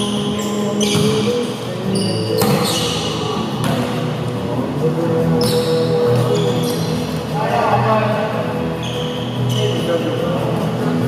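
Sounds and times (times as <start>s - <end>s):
sneakers squeaking on hardwood: 0.0s - 4.0s, 5.4s - 7.2s, 8.8s - 9.9s
players' voices: 0.0s - 11.0s
steady pitched hum: 0.0s - 11.0s
volleyball being hit: 3.6s - 4.0s.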